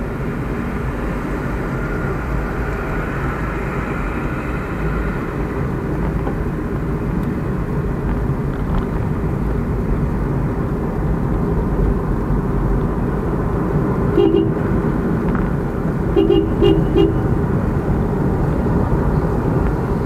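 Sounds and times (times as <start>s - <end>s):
car road and engine rumble: 0.0s - 20.0s
vehicle horn toots: 14.1s - 14.8s, 16.1s - 17.4s.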